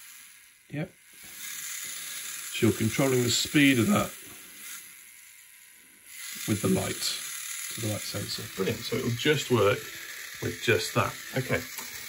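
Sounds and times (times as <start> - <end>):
small motor whirring: 0.0 - 12.0.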